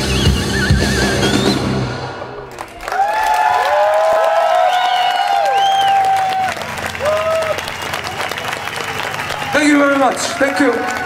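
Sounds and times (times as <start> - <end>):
audience clapping and cheering: 2.4 - 11.0
whoops: 2.8 - 8.4.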